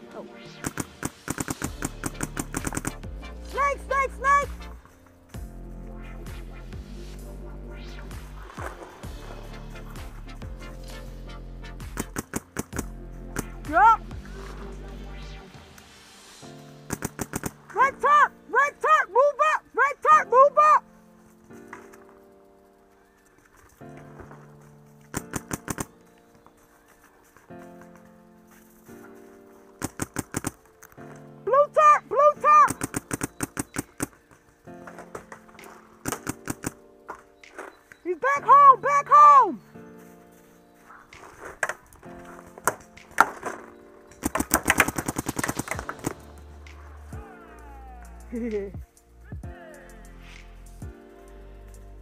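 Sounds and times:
background music with chords: 0.0 - 52.0
paintball marker firing: 0.6 - 3.0, 12.0 - 13.6, 16.9 - 17.6, 25.1 - 26.0, 29.8 - 30.7, 32.7 - 34.2, 35.6 - 36.8, 42.6 - 46.8.

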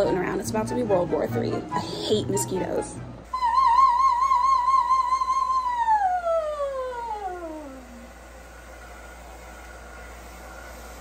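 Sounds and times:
woman singing vocal warm-up: 3.3 - 7.8
hair dryer blowing: 3.3 - 11.0.

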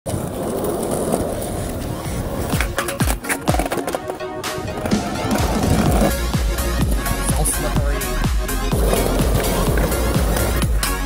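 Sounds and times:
skateboard wheels rolling: 0.1 - 11.0
music with deep bass kicks: 5.9 - 11.0.

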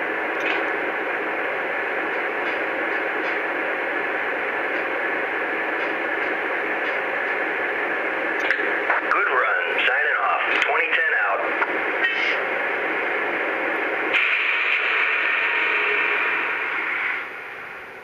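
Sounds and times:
radio-style voice chatter: 8.5 - 12.6.

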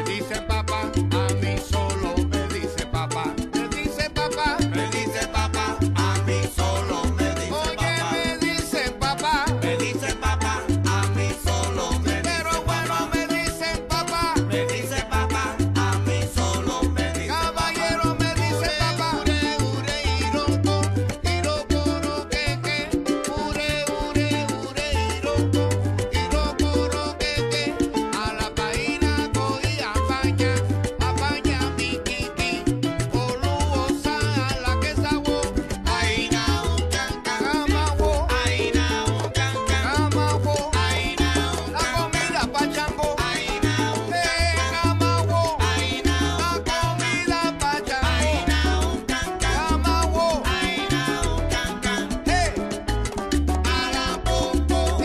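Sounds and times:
salsa music: 0.0 - 55.0.

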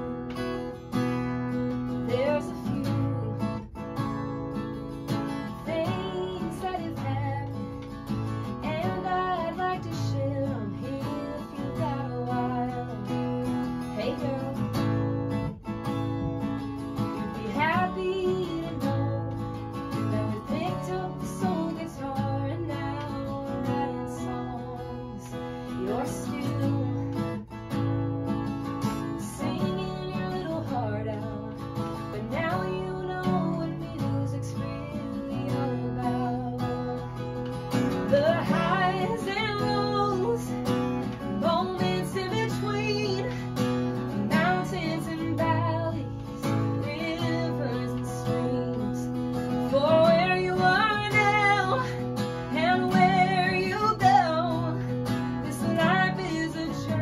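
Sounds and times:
acoustic guitar strumming: 0.0 - 57.0
woman singing: 0.0 - 57.0.

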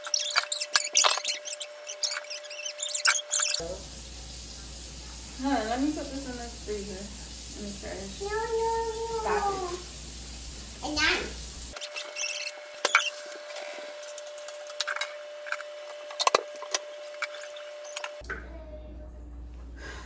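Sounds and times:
dishes and utensils clinking: 11.8 - 18.2.

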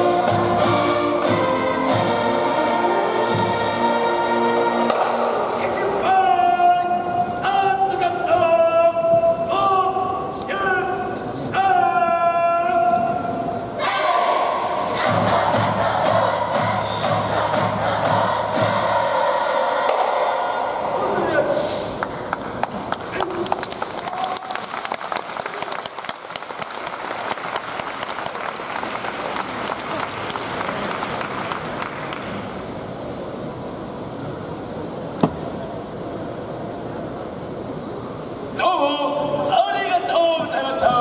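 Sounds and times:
band music: 0.0 - 8.3
group shouting: 13.8 - 14.6
audience applause: 22.0 - 32.5.

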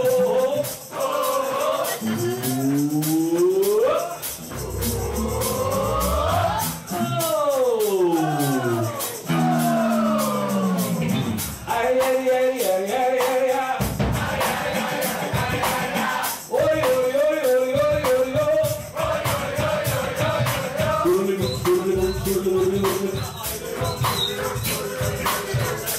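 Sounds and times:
drum and hand percussion beat: 0.0 - 25.9
man singing: 0.0 - 25.9
live band playing: 8.5 - 11.8.

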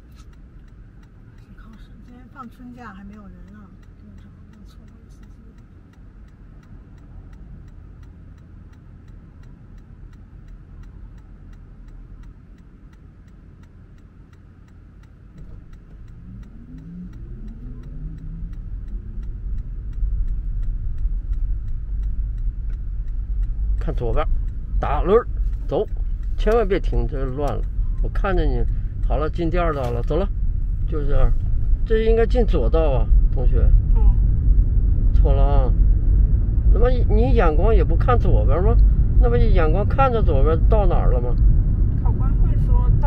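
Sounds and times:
turn signal ticking: 0.0 - 43.0
car pulling away with road rumble: 5.7 - 43.0.

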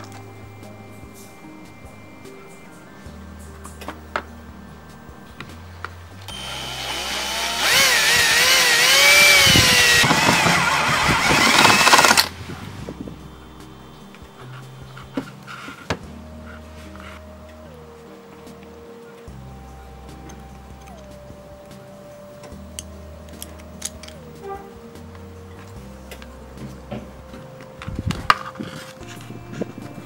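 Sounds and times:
drill boring through metal: 6.3 - 12.4.

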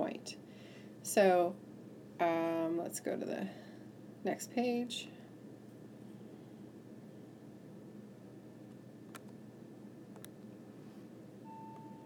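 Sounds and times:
short electronic beep: 11.4 - 12.0.

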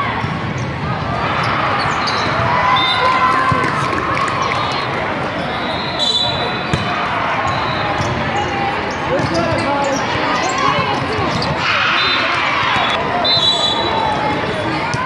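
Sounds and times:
volleyball hits and bounces: 6.7 - 7.0.

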